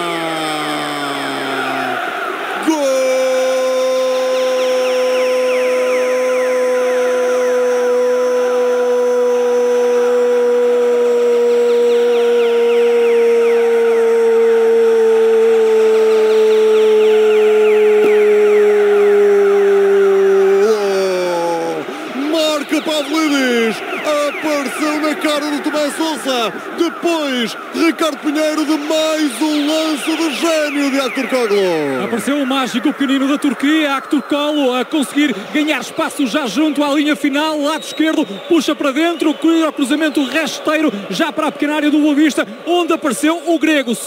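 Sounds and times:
commentator shouting goal: 0:00.0 - 0:02.0, 0:02.6 - 0:44.0.

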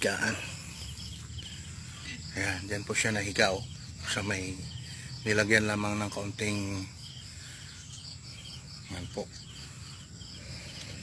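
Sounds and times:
insects chirping: 0:00.0 - 0:11.0.

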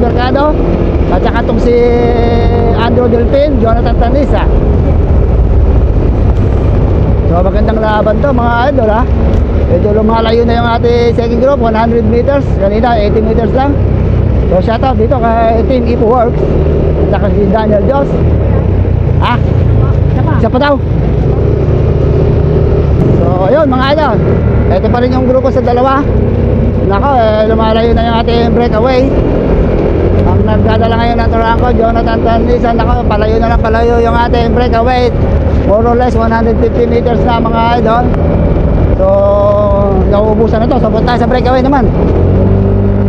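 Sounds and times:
wind rumble: 0:00.0 - 0:43.0.

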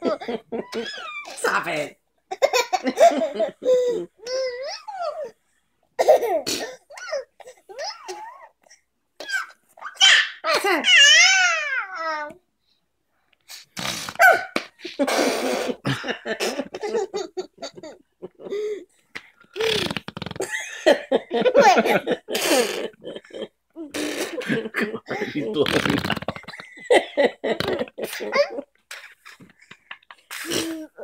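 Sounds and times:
baby giggling: 0:00.1 - 0:01.4, 0:21.5 - 0:31.0
buzzing raspberry blown with lips: 0:13.5 - 0:14.2, 0:19.6 - 0:20.5, 0:23.9 - 0:24.5, 0:25.6 - 0:26.4
person laughing: 0:20.4 - 0:28.5.

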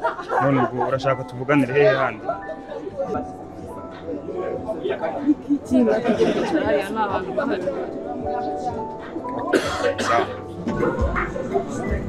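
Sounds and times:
background music with sustained notes: 0:00.0 - 0:12.0.

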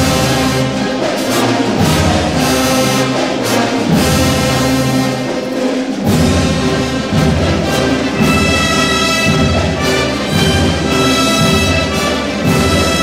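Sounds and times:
marching band playing: 0:00.0 - 0:13.0.

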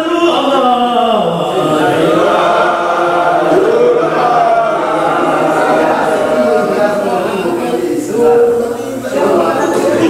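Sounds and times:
men chanting together: 0:00.2 - 0:10.0.

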